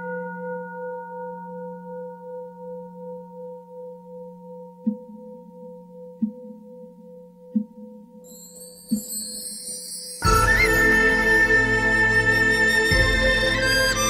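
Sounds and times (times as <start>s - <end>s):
singing bowl ringing: 0.0s - 13.0s.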